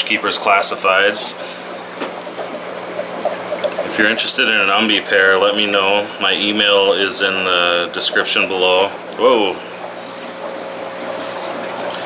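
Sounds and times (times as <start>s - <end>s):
aquarium filter water bubbling: 0.0s - 12.0s.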